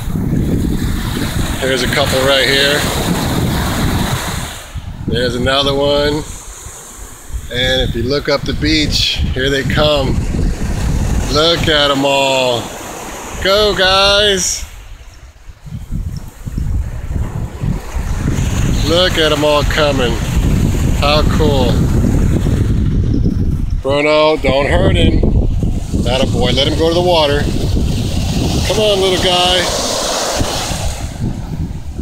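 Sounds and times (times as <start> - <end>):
ocean surf: 0.0 - 24.4, 25.0 - 32.0
wind buffeting microphone: 0.0 - 32.0.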